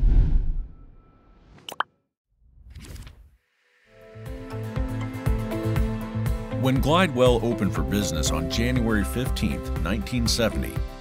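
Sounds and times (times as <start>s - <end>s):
whoosh: 0.0s - 1.6s.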